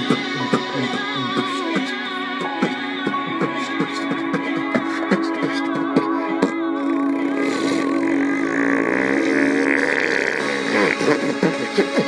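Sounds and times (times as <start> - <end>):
beatboxer buzzing mouth drone: 0.0 - 12.0
clicking beatbox rhythm: 0.0 - 12.0
radio music: 0.0 - 12.0.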